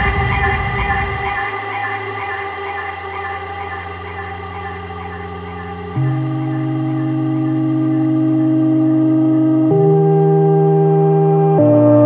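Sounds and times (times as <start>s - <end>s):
electronic dance music synth chords: 0.0s - 12.0s.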